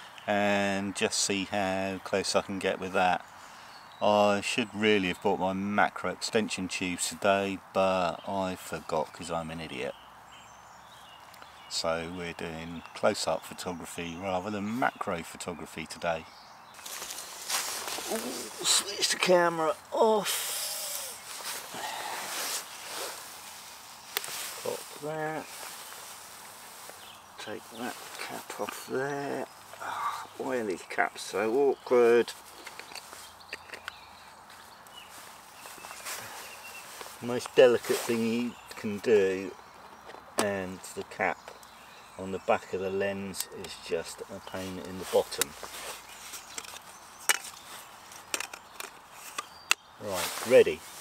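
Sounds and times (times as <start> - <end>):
handling noise of hands and jacket: 16.8 - 19.5, 20.5 - 29.8, 32.3 - 38.4, 44.5 - 51.0
camera lens clicks and knocks: 46.4 - 47.6, 48.3 - 49.8.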